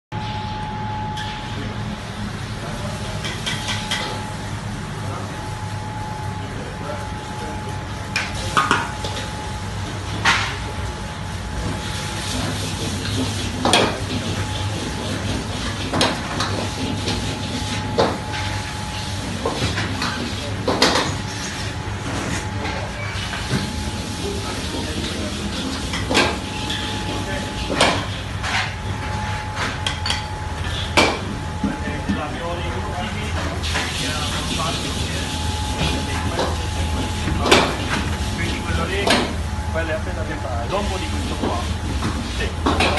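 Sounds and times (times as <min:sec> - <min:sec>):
equipment hum: 0:00.1 - 0:42.9.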